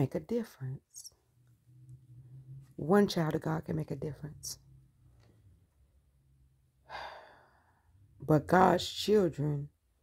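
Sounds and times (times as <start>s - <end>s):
sharp breath drawn in: 6.9s - 7.9s.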